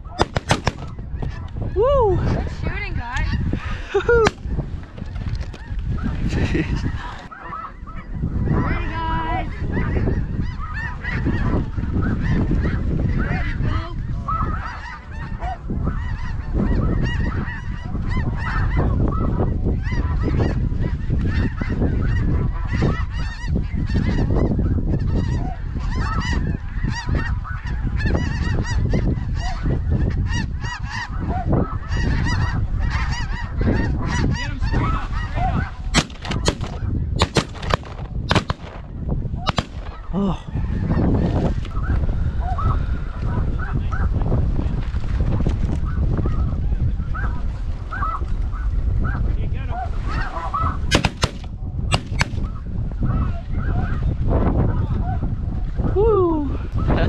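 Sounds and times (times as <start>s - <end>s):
shotgun bangs: 0.2s - 1.0s, 36.0s - 38.9s, 39.5s - 40.1s, 50.9s - 52.5s
flock of geese honking: 3.1s - 38.7s, 47.2s - 48.3s, 49.7s - 54.0s.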